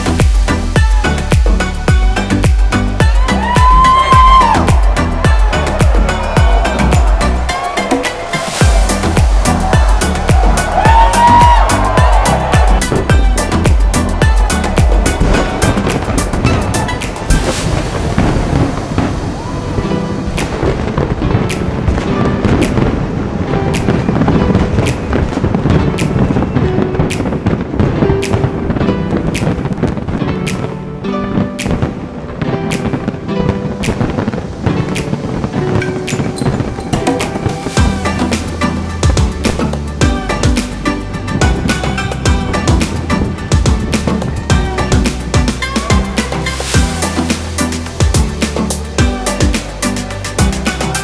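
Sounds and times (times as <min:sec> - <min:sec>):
fireworks bangs and crackles: 0:00.0 - 0:51.0
music playing: 0:00.0 - 0:51.0.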